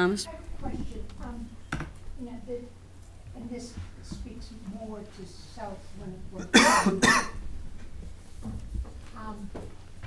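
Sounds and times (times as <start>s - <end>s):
person coughing: 6.4s - 7.4s.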